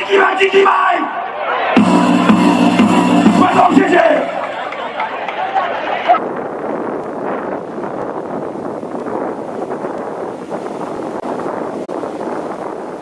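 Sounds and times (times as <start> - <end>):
wind buffeting microphone: 4.4 - 13.0.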